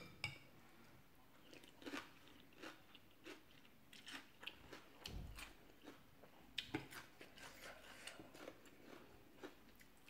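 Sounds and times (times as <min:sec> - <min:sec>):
person chewing noodles: 0:01.4 - 0:10.0.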